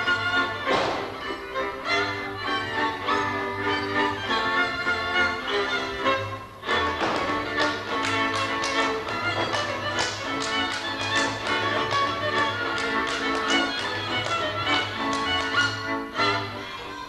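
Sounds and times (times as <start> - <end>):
folk string band dance tune: 0.0 - 17.0
dancer slapping legs and boots: 0.6 - 1.2, 6.9 - 15.7.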